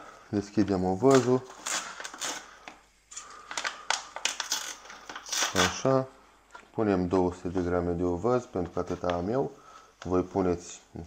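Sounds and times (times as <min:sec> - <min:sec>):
packet crinkling rustles: 0:01.0 - 0:10.4.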